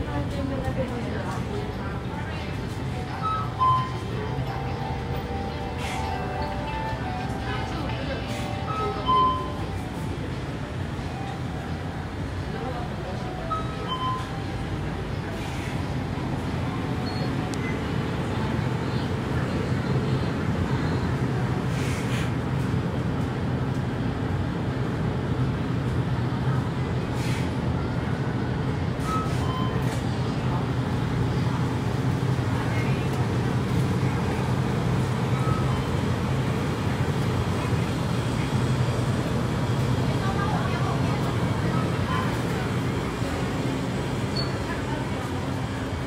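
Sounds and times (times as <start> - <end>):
faint murmur of voices: 0.0 - 46.0.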